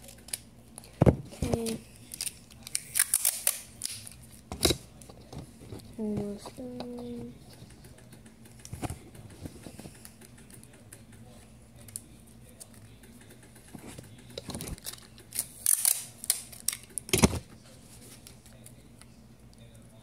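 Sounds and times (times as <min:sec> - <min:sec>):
scraping crinkling noises: 0:03.9 - 0:08.0, 0:16.4 - 0:19.7.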